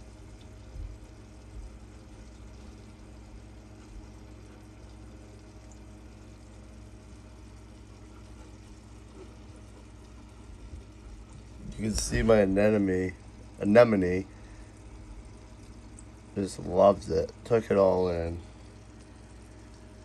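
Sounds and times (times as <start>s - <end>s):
aquarium pumps humming: 0.0s - 20.0s
water circulating: 0.0s - 20.0s.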